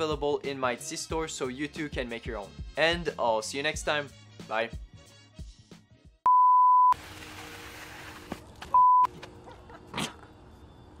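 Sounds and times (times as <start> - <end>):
electronic beeps: 6.3 - 7.0, 8.8 - 9.1.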